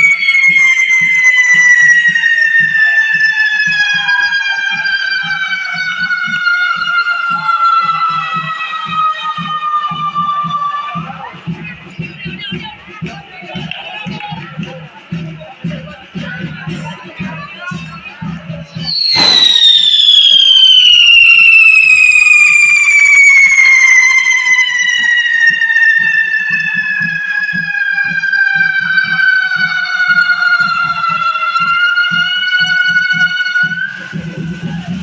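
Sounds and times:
firework high whistle: 0:00.0 - 0:11.2, 0:18.8 - 0:35.0.

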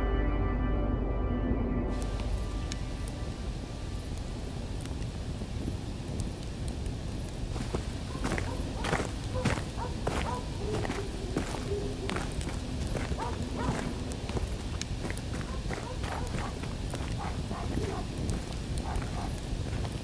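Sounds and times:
footsteps on dirt: 0:07.0 - 0:20.0
low voices: 0:08.1 - 0:19.8.

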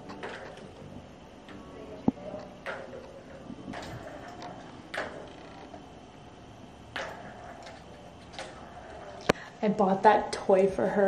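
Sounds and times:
plastic balls rolling in track: 0:00.0 - 0:09.4
ball clacking against track: 0:02.5 - 0:05.8, 0:06.9 - 0:09.4.

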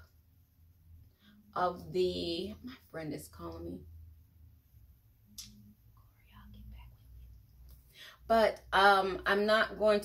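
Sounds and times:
low room hum: 0:00.0 - 0:10.0
person whispering: 0:06.0 - 0:07.4.

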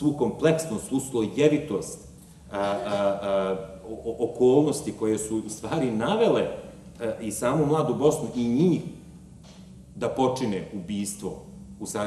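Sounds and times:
man saying drawn-out ehh: 0:02.5 - 0:03.4.

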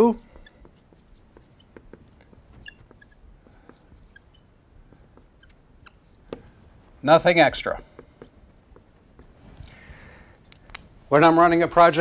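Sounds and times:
marker squeaking on whiteboard: 0:00.0 - 0:10.8.

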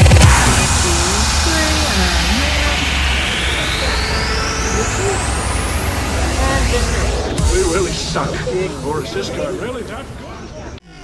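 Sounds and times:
rising electronic sweep: 0:00.0 - 0:10.8
steady low hum: 0:00.0 - 0:10.8
people chattering: 0:00.0 - 0:11.0.

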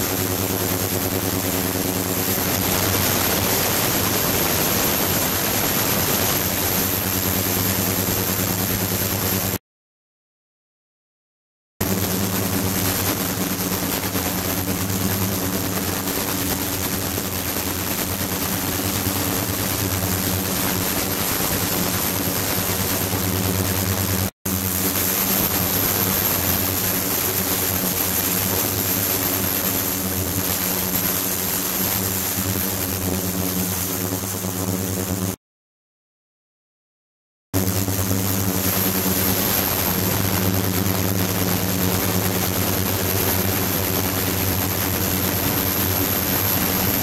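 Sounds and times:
thin high whine: 0:00.0 - 0:09.6, 0:37.6 - 0:47.0
ultrasonic cleaner hiss and hum: 0:00.0 - 0:09.6, 0:11.8 - 0:35.2, 0:37.6 - 0:47.0.

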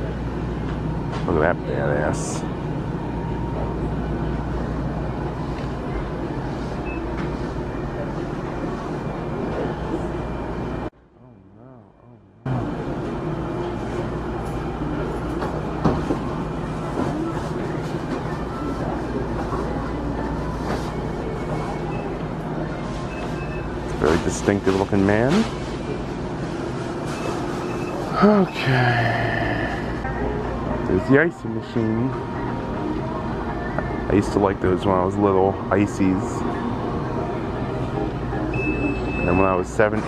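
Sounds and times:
machine hum: 0:00.0 - 0:24.8.

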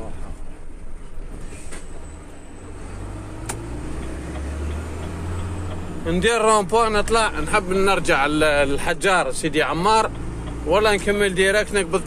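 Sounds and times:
truck diesel engine humming: 0:00.5 - 0:12.0
sharp click: 0:03.4 - 0:03.7.

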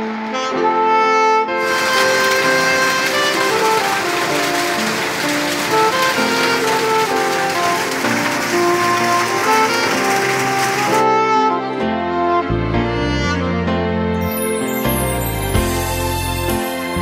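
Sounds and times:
slow background music: 0:00.0 - 0:17.0
rain on corrugated roof: 0:01.6 - 0:11.1.

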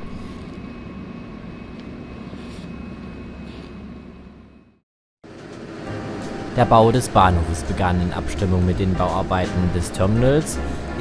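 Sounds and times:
low rumble of station ambience: 0:00.0 - 0:11.0.

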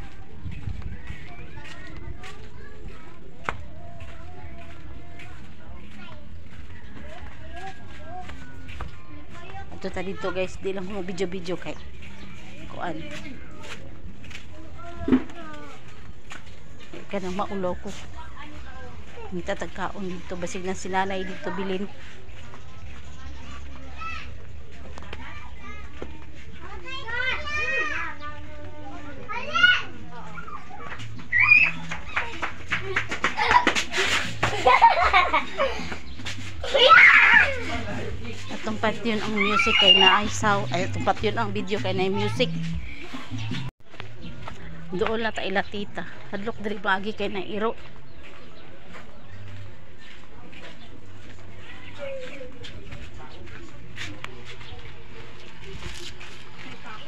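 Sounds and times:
children calling and shouting: 0:00.0 - 0:57.0.

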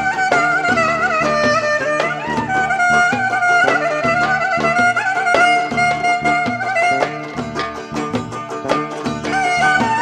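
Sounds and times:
clarinet melody: 0:00.0 - 0:07.3, 0:09.4 - 0:10.0
percussion beats: 0:00.0 - 0:10.0.

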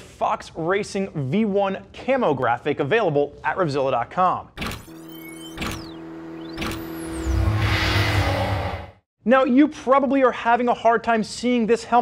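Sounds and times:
sweeping pitch glides: 0:05.0 - 0:09.0.

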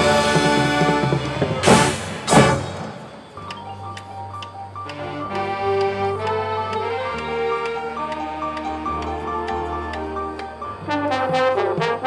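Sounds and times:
soft marching band music: 0:00.0 - 0:12.0
steady ticking: 0:02.3 - 0:12.0.

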